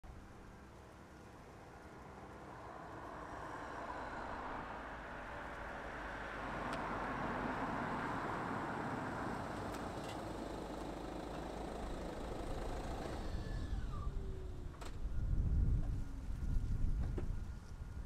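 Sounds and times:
low engine rumble: 0:00.0 - 0:18.0
car approaching and stopping: 0:00.2 - 0:18.0.

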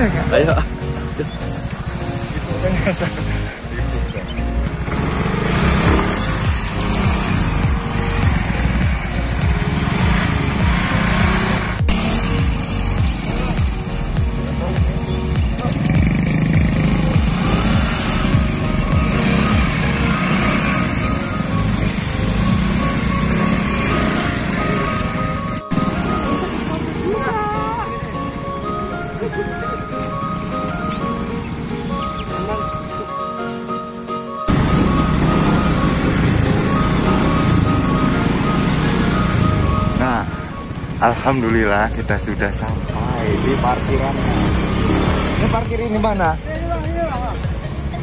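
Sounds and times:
background music: 0:00.0 - 0:48.0
motorbike engines revving: 0:00.0 - 0:48.0.

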